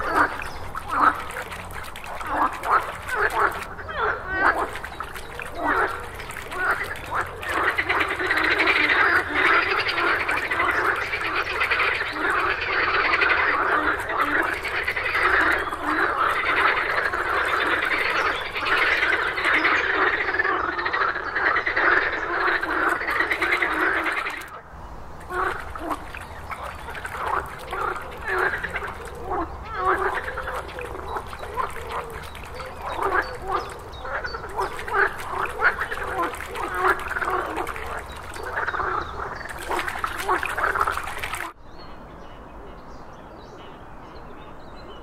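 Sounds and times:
frogs croaking: 0.0 - 41.6.

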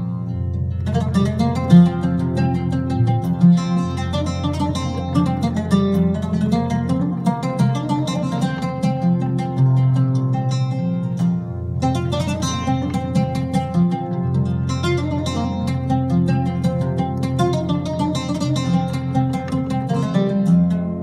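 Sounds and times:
plucked oud notes on keyboard: 0.0 - 21.0.

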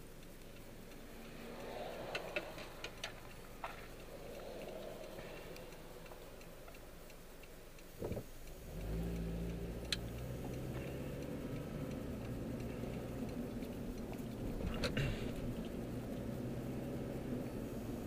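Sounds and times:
car engine from inside cabin: 0.0 - 18.0.

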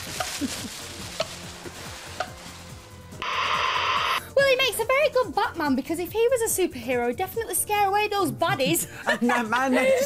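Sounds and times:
faint background music: 0.0 - 10.0
tv static hiss: 3.2 - 4.2.

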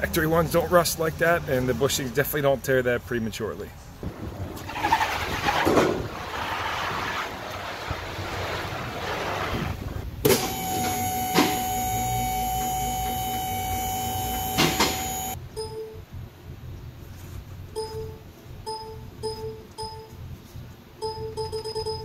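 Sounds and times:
high-pitched machine hum: 10.3 - 15.4.

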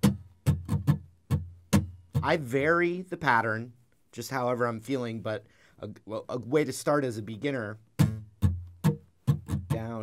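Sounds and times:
acoustic guitar strums: 0.0 - 3.0, 7.8 - 10.0.

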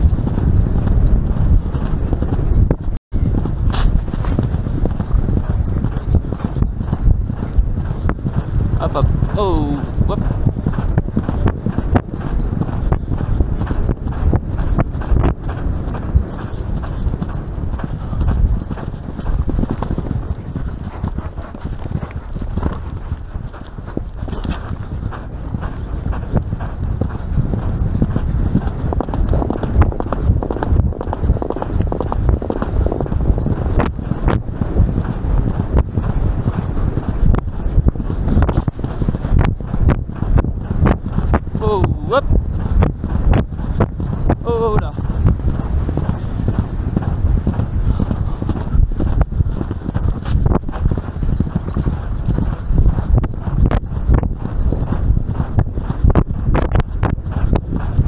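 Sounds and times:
horse hoofbeats galloping on turf: 0.0 - 58.0
wind noise on microphone: 0.0 - 58.0.

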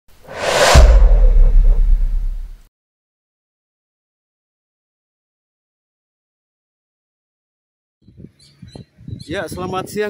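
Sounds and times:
whoosh: 0.2 - 2.6
deep bass boom: 0.3 - 2.6.

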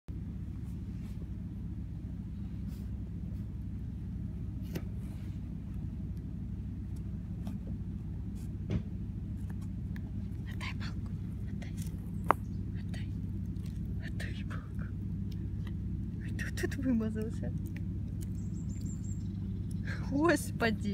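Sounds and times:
low rumble: 0.1 - 20.9
puppy chewing a stick: 1.2 - 20.9
wood cracking in teeth: 13.3 - 14.0, 17.5 - 19.8.

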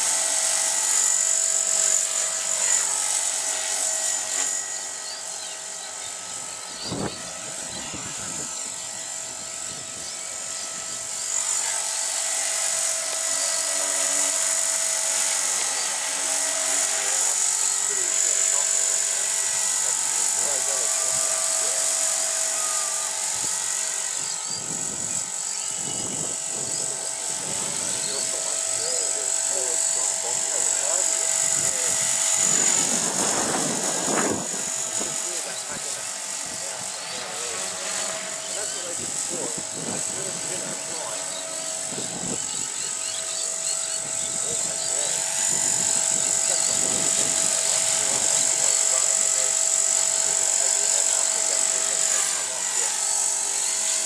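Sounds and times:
rc helicopter whine: 0.0 - 54.0.

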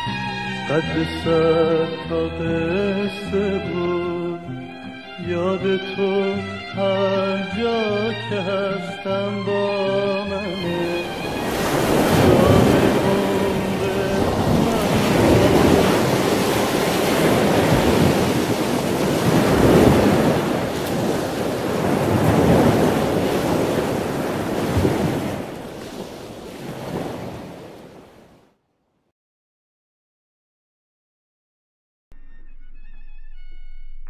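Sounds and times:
song: 0.0 - 23.7
rushing wash of noise: 10.4 - 27.6.

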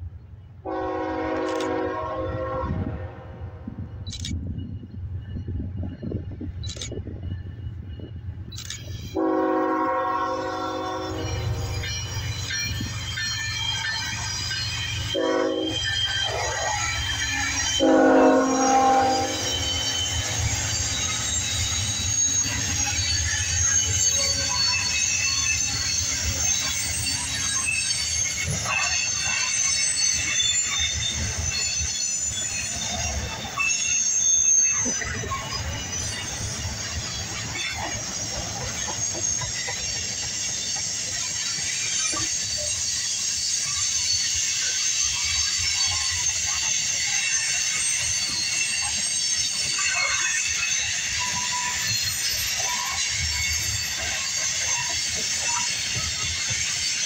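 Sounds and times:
locomotive horn blasts: 0.6 - 3.6, 9.2 - 11.4, 15.1 - 16.4, 17.8 - 19.6
high wheel squeal: 3.7 - 57.0.

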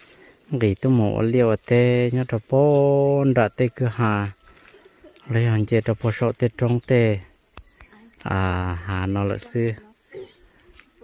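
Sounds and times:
man talking: 0.5 - 4.4, 5.2 - 7.4, 8.2 - 9.8.

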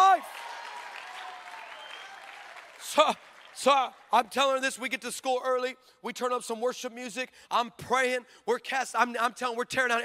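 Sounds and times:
audience applauding: 0.0 - 4.6
man speaking: 2.8 - 10.0.

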